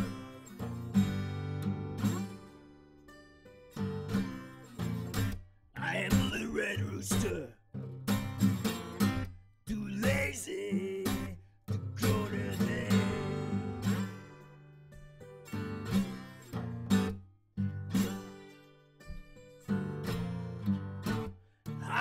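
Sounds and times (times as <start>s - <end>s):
acoustic guitar blues riff: 0.0s - 22.0s.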